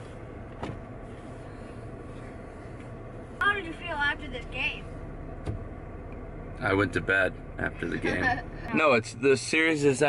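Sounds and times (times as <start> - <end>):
minivan rumble from inside: 0.0 - 10.0.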